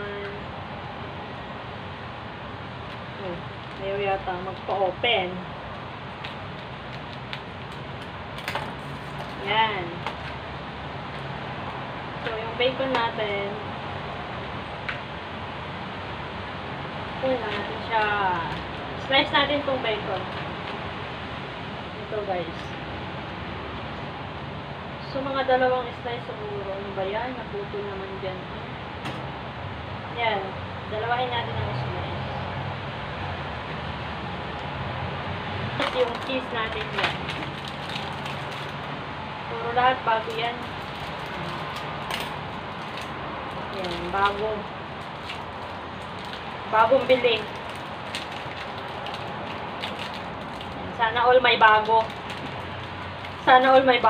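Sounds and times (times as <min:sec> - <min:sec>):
kitchen background noise: 0:35.6 - 0:39.0, 0:39.8 - 0:54.0.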